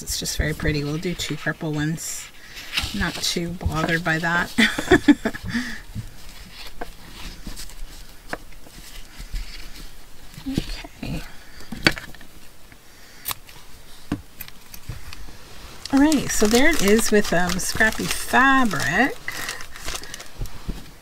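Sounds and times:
fabric and card rustling: 0.0s - 12.5s, 13.4s - 21.0s.

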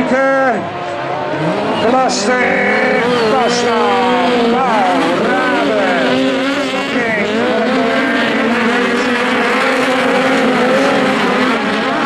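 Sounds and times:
race car engines revving: 0.0s - 12.0s.

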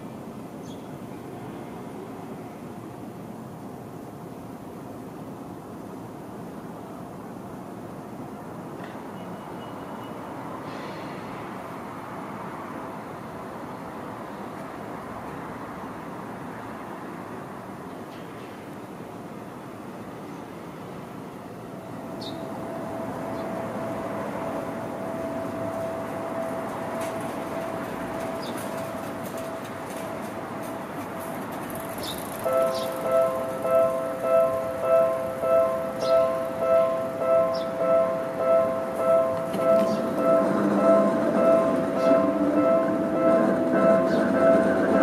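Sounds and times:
train hum: 0.0s - 9.2s, 10.2s - 45.0s
train low rumble: 10.4s - 45.0s
electronic two-note warning bell: 32.5s - 44.6s.

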